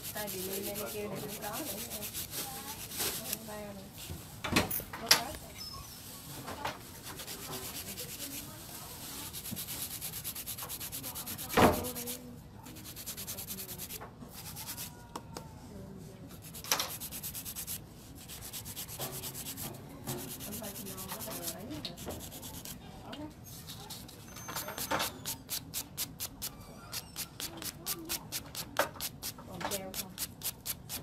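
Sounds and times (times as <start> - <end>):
nail file rasping: 20.2 - 22.8.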